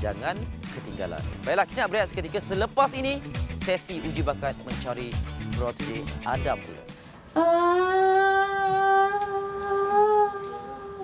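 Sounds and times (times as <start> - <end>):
woman singing a long held note: 7.4 - 11.0.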